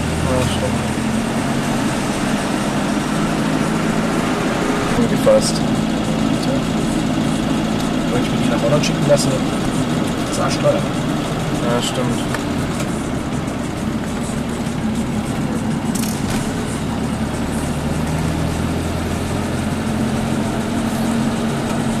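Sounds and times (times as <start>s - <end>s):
car engine humming: 0.0s - 22.0s.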